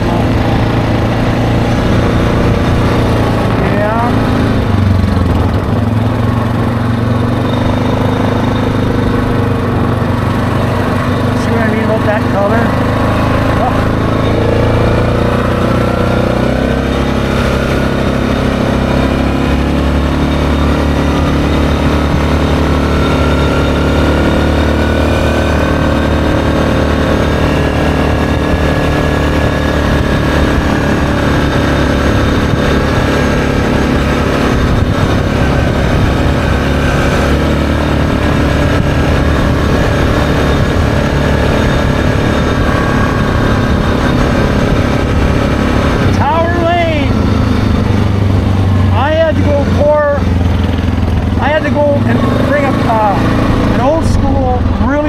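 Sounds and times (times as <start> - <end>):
atv engine running: 0.0 - 55.0.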